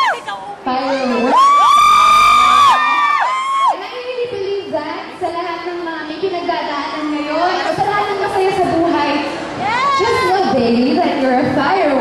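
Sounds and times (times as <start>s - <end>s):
audience screaming: 0.0s - 3.8s.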